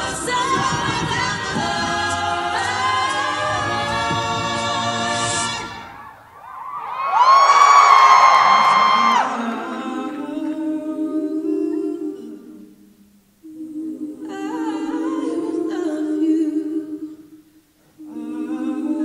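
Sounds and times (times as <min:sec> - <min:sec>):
a cappella group singing: 0:00.0 - 0:06.0, 0:09.0 - 0:17.4, 0:18.0 - 0:19.0.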